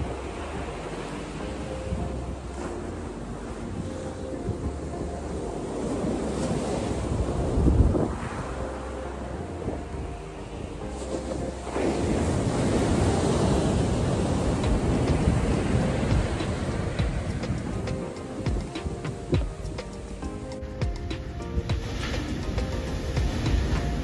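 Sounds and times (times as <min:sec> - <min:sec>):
ocean surf breaking on beach: 0:00.0 - 0:24.0
wind buffeting microphone: 0:00.0 - 0:24.0.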